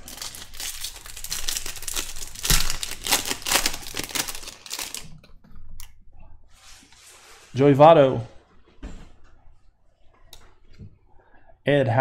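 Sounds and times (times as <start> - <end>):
foil wrapper tearing and crinkling: 0.0 - 5.1.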